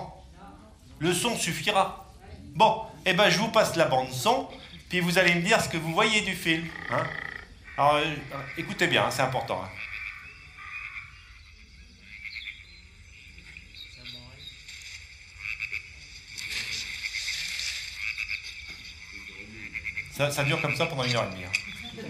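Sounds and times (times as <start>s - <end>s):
frogs croaking over loudspeakers: 0.0s - 0.3s, 1.0s - 22.0s.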